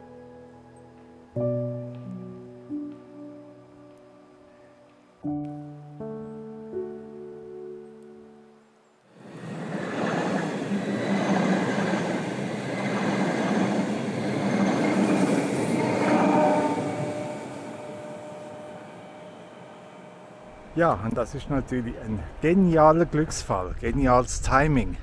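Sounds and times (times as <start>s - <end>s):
train wheels on rails: 9.2s - 23.1s.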